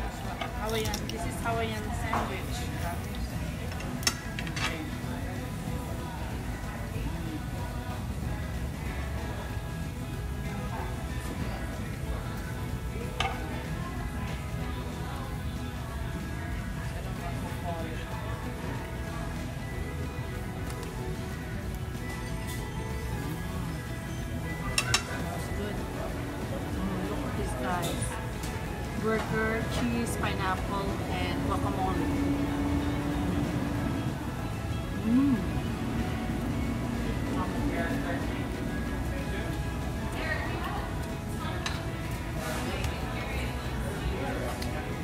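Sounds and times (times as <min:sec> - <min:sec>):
background music: 0:00.0 - 0:45.0
murmur of voices: 0:00.0 - 0:45.0
tableware clinking: 0:24.6 - 0:25.5.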